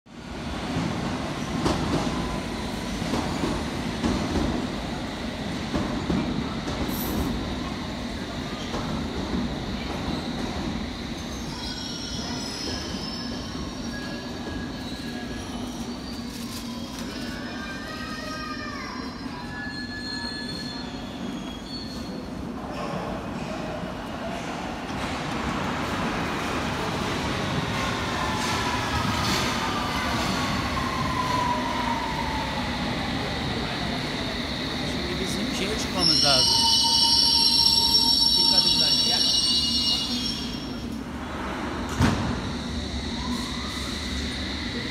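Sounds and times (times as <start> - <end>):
train departing platform: 0.1 - 44.9.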